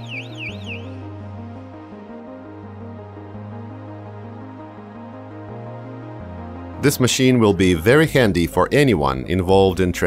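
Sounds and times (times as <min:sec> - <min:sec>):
background music: 0:00.0 - 0:10.0.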